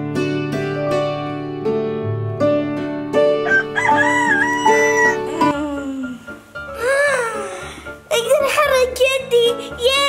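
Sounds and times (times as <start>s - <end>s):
plucked-string music: 0.0s - 10.0s
rooster crowing: 3.4s - 5.5s.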